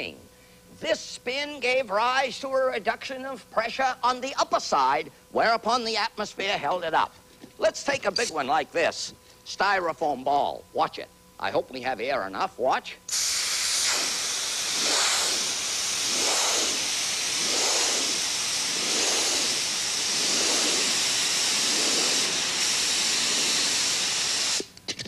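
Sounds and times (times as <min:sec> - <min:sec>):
compressed air hissing: 0:13.1 - 0:25.0.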